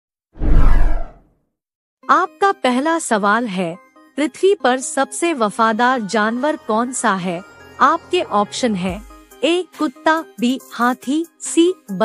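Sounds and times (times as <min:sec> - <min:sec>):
deep whoosh: 0:00.4 - 0:01.2.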